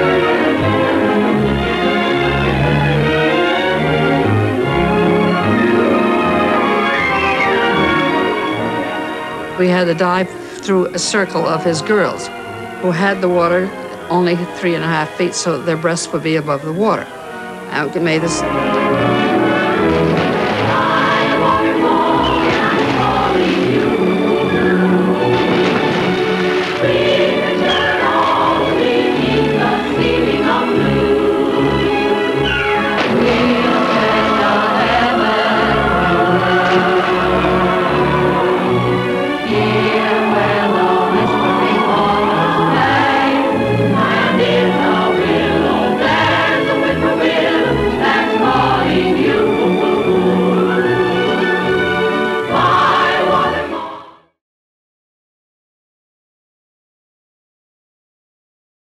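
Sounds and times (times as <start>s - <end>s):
orchestral music: 0.0s - 54.1s
choir singing: 0.0s - 54.4s.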